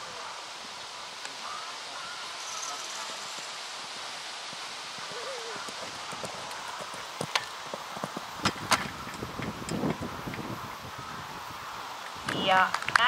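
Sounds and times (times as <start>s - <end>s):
steady outdoor hiss: 0.0s - 13.0s
faint distant voice: 5.1s - 7.0s.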